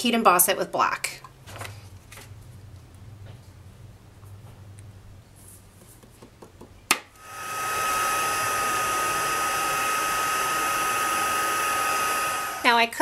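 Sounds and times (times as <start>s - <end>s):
heat tool fan rush and whine: 7.2s - 13.0s.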